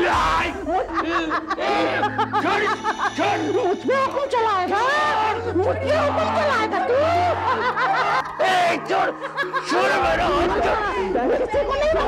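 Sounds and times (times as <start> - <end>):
man laughing mockingly: 0.6 - 3.6, 7.2 - 12.0.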